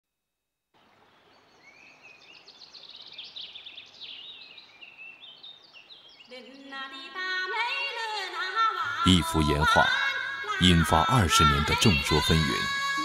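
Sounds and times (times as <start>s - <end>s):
birds chirping and twittering: 0.8s - 7.2s.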